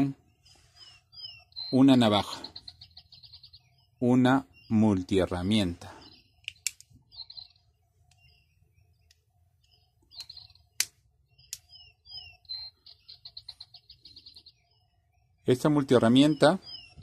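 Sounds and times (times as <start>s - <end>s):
bird chirping and trilling: 0.0s - 17.0s.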